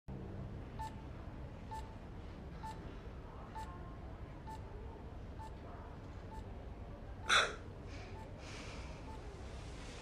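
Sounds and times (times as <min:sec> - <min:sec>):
room hum: 0:00.1 - 0:10.0
patient monitor beeps: 0:00.8 - 0:01.0, 0:01.7 - 0:02.0, 0:02.6 - 0:02.8, 0:03.5 - 0:03.7, 0:04.4 - 0:04.7, 0:05.4 - 0:05.6, 0:06.2 - 0:06.5, 0:08.1 - 0:08.4, 0:09.0 - 0:09.3.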